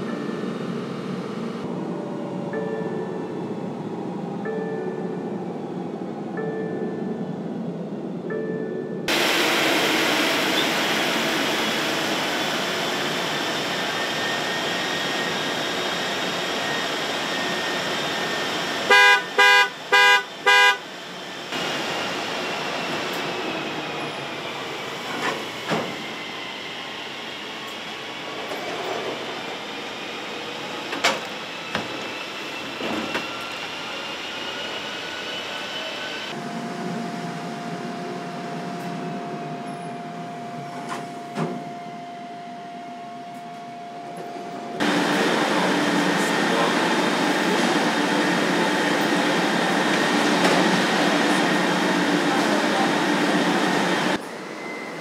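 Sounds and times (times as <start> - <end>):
car horn honks: 18.9 - 20.8.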